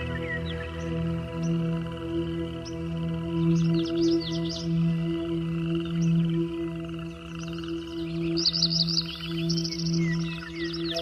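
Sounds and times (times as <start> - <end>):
frogs or insects trilling: 0.0 - 11.0
low ambient drone: 0.0 - 11.0
bird chirps: 2.5 - 11.0.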